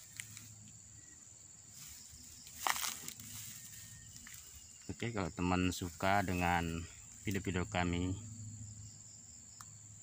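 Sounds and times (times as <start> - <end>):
high-pitched insect call: 0.0 - 10.0.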